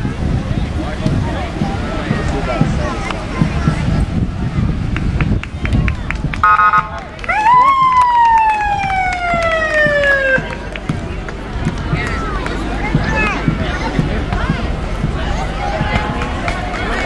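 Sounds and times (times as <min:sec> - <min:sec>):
crowd chatter: 0:00.0 - 0:17.0
horn-like tone: 0:06.4 - 0:06.9
siren wailing: 0:06.4 - 0:10.5.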